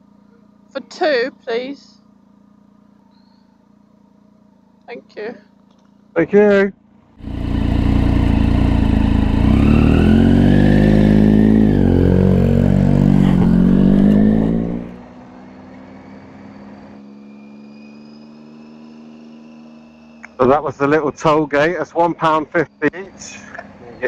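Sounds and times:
motorcycle engine revving: 6.9 - 20.4.

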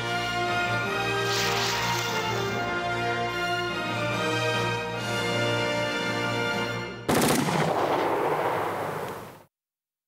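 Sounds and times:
machine-gun fire: 7.1 - 9.4.

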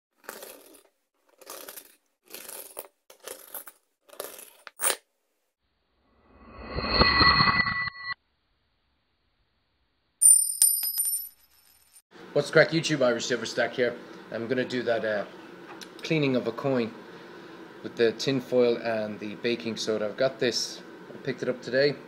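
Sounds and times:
coins clinking: 0.2 - 5.0, 10.2 - 12.0.

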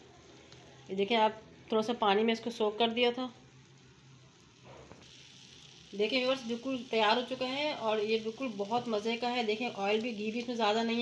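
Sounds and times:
faint sizzling in a pan: 0.0 - 11.0.

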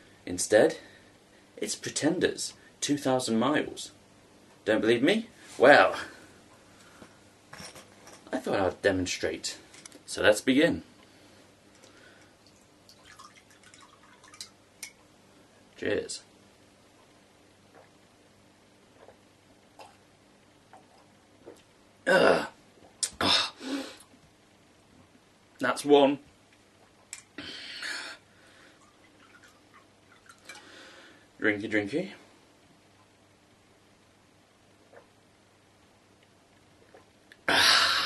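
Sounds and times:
liquid trickling into glass: 12.4 - 14.5.

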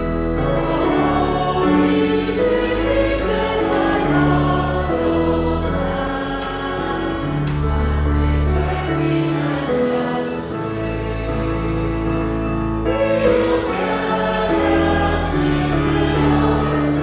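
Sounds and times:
congregation singing a hymn: 0.0 - 17.0
low sustained accompaniment notes: 0.0 - 17.0.

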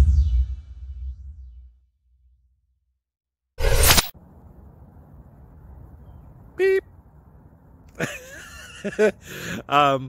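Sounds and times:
swoosh sound effect: 3.6 - 4.2
low outdoor rumble with hiss: 4.2 - 10.0.

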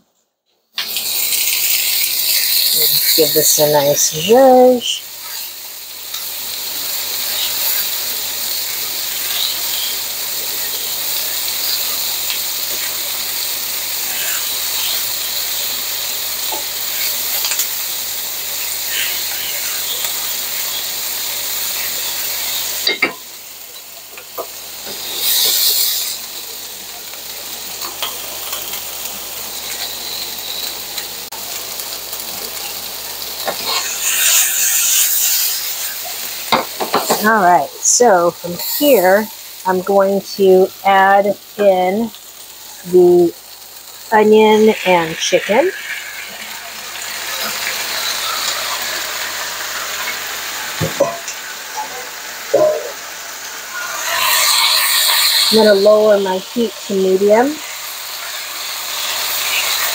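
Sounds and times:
vegetables sizzling in hot oil: 0.7 - 59.9
tongs clicking and scraping pan: 27.8 - 28.8.

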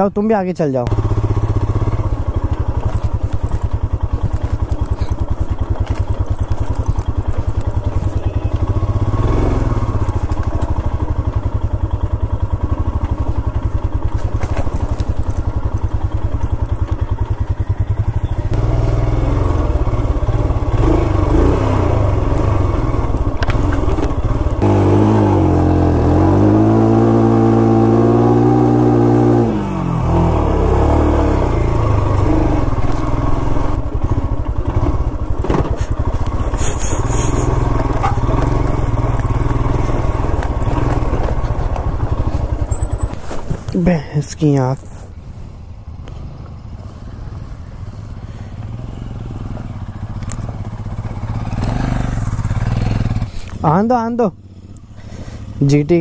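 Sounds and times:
motorcycle engine chugging: 0.0 - 56.0.

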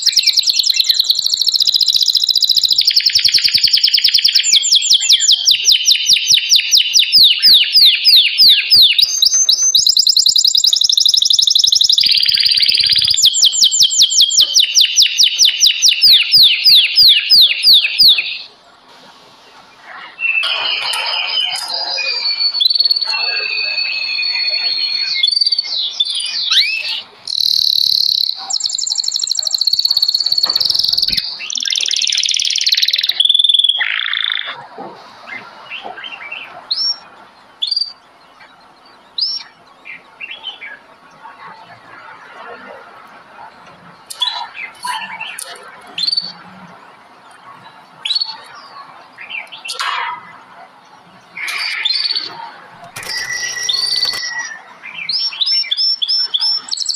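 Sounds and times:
songbirds singing: 0.0 - 56.9.

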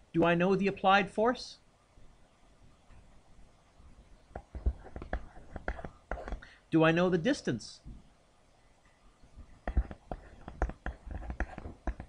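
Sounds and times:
soft taps and clicks: 4.3 - 6.5, 9.6 - 12.0.

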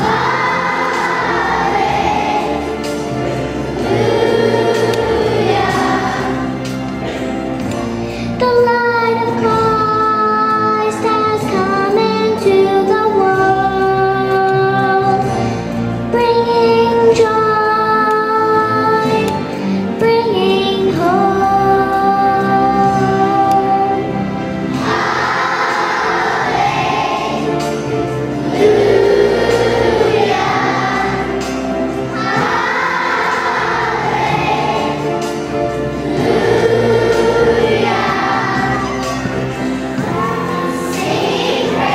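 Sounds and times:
children's choir singing: 0.0 - 15.5, 16.3 - 41.9.

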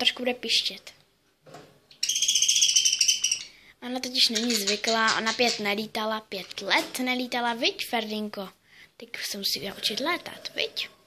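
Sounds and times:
budgerigar squeaking: 2.0 - 3.6.

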